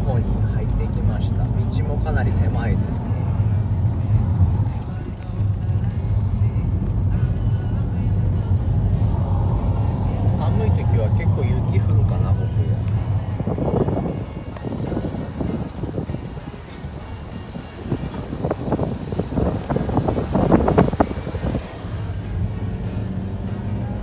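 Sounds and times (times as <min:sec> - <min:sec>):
car engine and road drone: 0:00.0 - 0:24.0.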